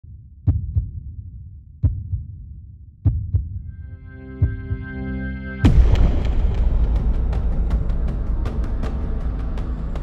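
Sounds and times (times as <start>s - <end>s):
heartbeat thumps: 0.0s - 3.7s, 4.3s - 5.0s.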